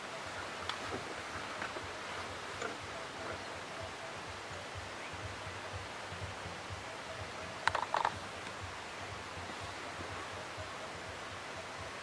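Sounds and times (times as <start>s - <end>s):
steady hiss: 0.0s - 12.0s
faint tick: 0.6s - 1.0s, 8.4s - 8.6s.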